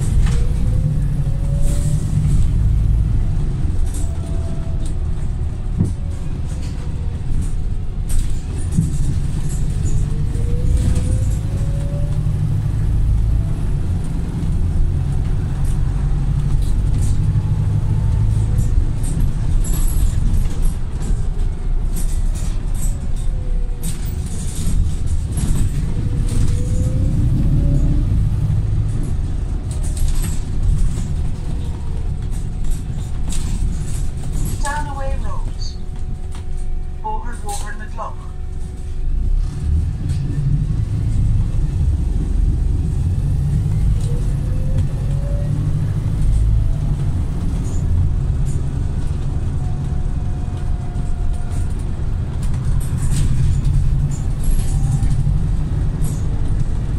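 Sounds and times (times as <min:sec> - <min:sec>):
bus engine and road rumble: 0:00.0 - 0:56.9
short rattles of bus body: 0:00.0 - 0:56.9.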